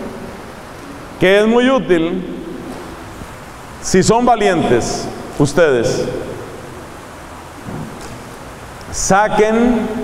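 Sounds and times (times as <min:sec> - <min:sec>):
steady background hiss: 0:00.0 - 0:10.0
man's amplified voice: 0:01.2 - 0:02.7, 0:03.8 - 0:06.5, 0:08.9 - 0:10.0.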